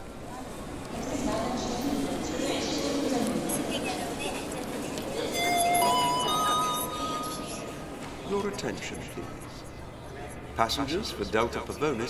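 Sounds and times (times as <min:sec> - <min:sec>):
three-note chime: 0:05.3 - 0:07.8.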